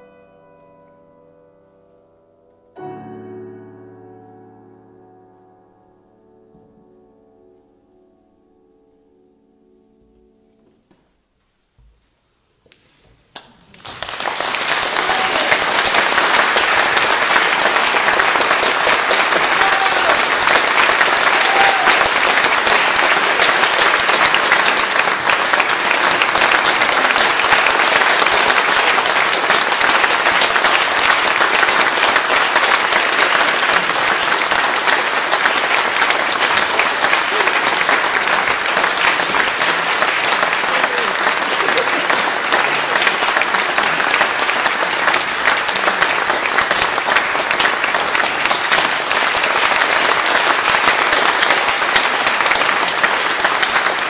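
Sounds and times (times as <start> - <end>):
audience applauding: 13.3 - 54.0.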